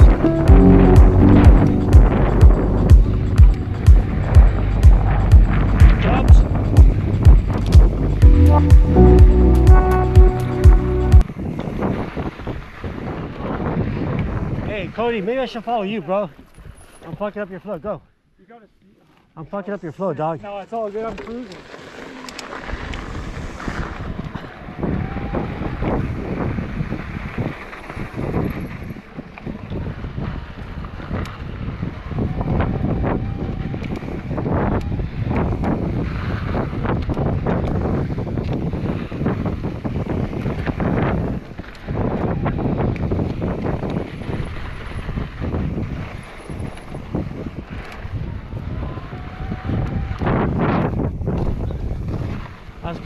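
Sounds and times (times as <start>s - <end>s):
bike tyres rolling on dirt: 0.0s - 8.4s, 11.2s - 18.0s, 19.1s - 53.0s
wind buffeting microphone: 0.0s - 15.5s, 22.5s - 53.0s.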